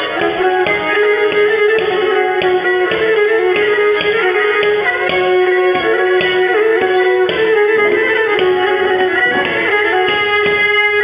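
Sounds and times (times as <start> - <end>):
bowed lyra folk melody: 0.0 - 11.0.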